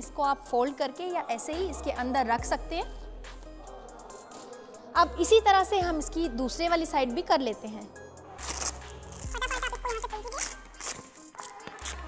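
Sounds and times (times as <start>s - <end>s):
background music: 0.0s - 12.0s
zipper being pulled open: 8.4s - 12.0s.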